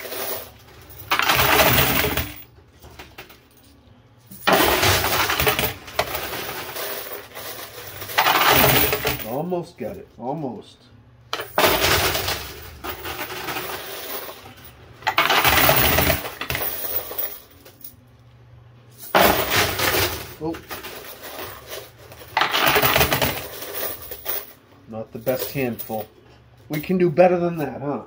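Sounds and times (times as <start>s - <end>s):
coins clattering in coin pusher: 0.0s - 9.4s, 11.3s - 17.9s, 19.0s - 26.1s.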